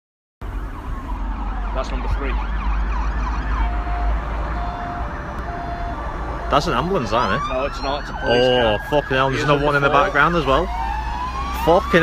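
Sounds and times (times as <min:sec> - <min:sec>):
emergency siren wailing: 0:00.4 - 0:12.0.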